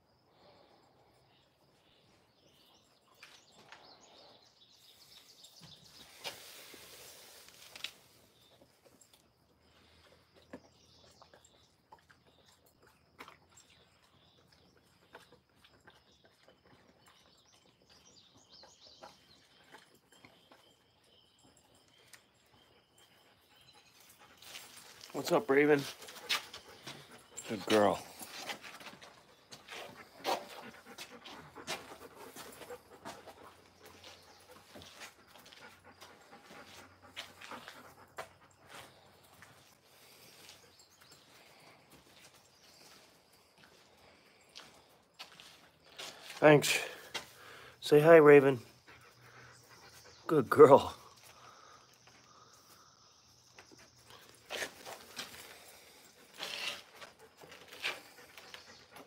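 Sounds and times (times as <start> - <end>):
puppy panting: 10.1 - 25.2, 25.8 - 42.3, 48.6 - 50.3, 53.6 - 59.0.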